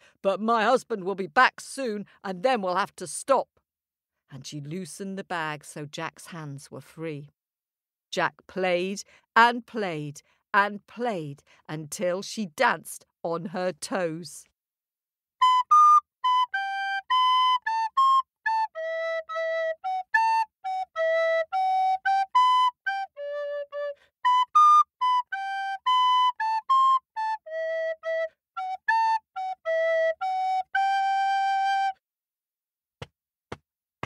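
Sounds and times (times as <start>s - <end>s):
solo flute tune: 15.4s - 32.0s.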